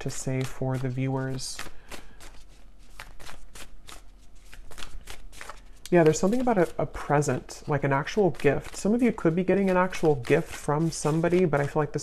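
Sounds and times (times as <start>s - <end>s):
cards being shuffled: 0.0s - 12.0s.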